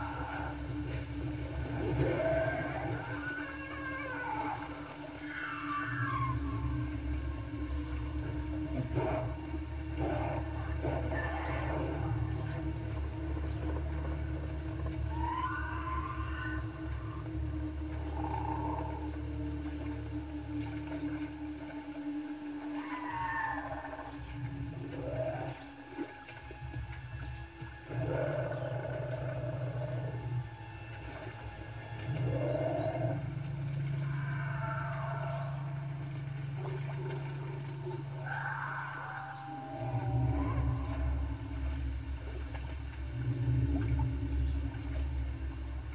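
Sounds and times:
falling cry-like glides: 0.0s - 19.2s, 22.3s - 25.8s, 28.0s - 42.4s
low sustained drone: 0.0s - 45.9s.

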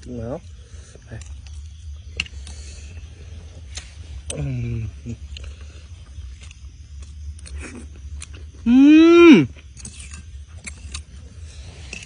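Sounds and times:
steady low hum: 0.0s - 12.0s
mouth noises eating: 3.7s - 11.1s
person humming: 8.7s - 9.5s.

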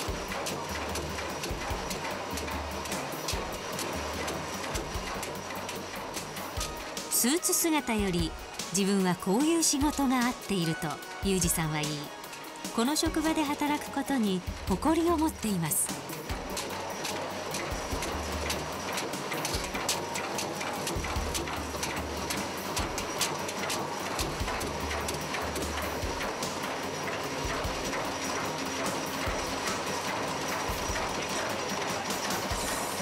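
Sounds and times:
power hammer striking metal: 0.0s - 7.1s, 9.8s - 33.0s.

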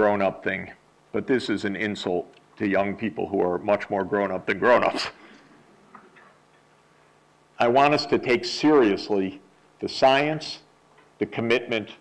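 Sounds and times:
man speaking: 0.0s - 5.2s, 7.6s - 12.0s.

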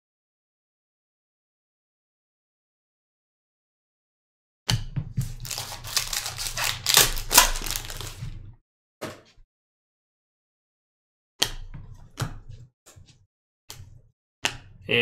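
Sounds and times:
cards rustling and flicking: 5.2s - 8.3s
foil pack tearing and crinkling: 5.2s - 8.4s.

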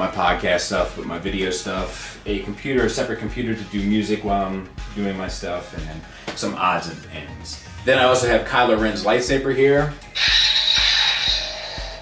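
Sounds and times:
background music with steady beat: 0.0s - 12.0s
lightsaber ignition hiss: 10.1s - 12.0s.

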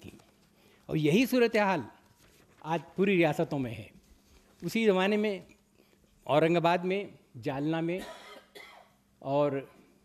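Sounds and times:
man speaking: 2.6s - 4.0s, 4.6s - 5.6s
short cough: 8.0s - 9.0s.

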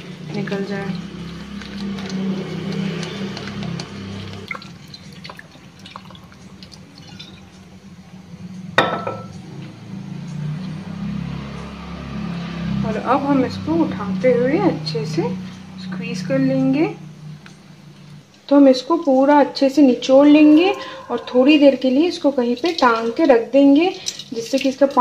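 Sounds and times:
soft background music: 0.0s - 25.0s
water splashing into strainer: 1.2s - 7.5s.

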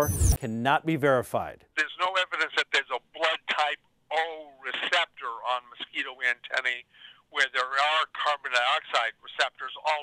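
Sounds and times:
person talking over telephone: 1.4s - 10.0s.

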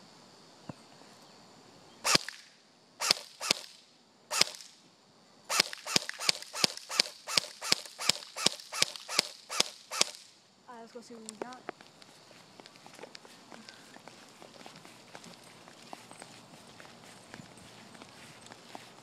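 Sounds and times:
airsoft gun shots: 2.1s - 2.4s, 3.0s - 4.7s, 5.5s - 10.3s.

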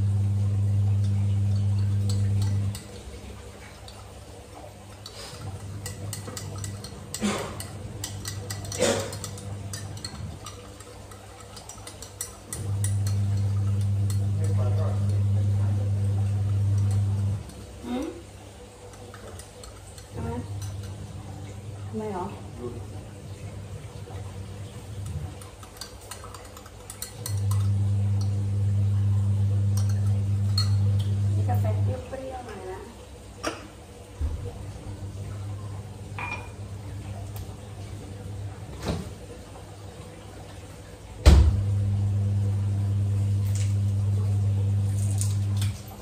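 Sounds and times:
low electrical hum: 0.0s - 46.0s
spoon stirring coffee in a glass: 0.9s - 18.0s, 18.8s - 21.6s, 24.7s - 31.3s
spoon clinking against glass: 5.6s - 15.2s, 29.7s - 30.9s, 36.2s - 36.6s.

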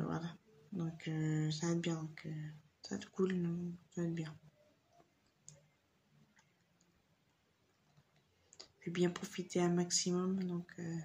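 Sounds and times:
woman speaking: 0.0s - 4.6s, 8.8s - 11.0s.

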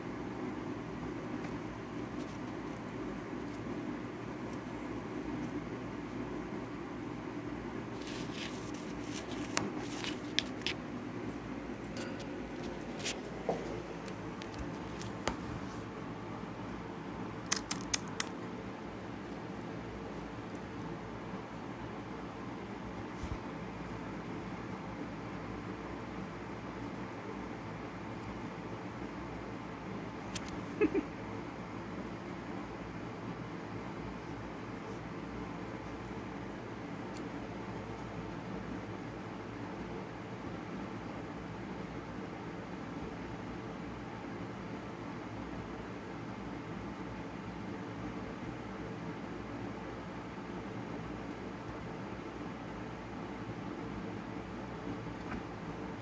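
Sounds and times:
steady low hum: 0.0s - 56.0s
rustling in paper bedding: 7.9s - 10.8s.

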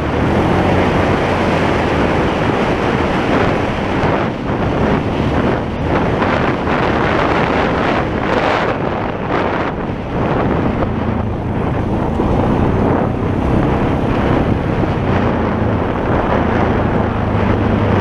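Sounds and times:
atv engine running: 0.0s - 18.0s
wind rumble on microphone: 0.0s - 18.0s.

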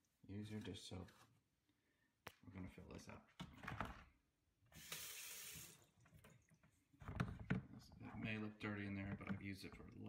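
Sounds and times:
tap water pouring into plastic tub: 4.8s - 6.7s.

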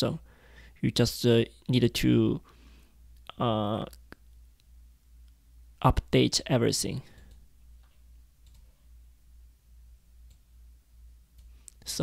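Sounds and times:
low steady hum: 0.0s - 12.0s
computer mouse clicks: 7.2s - 8.7s.

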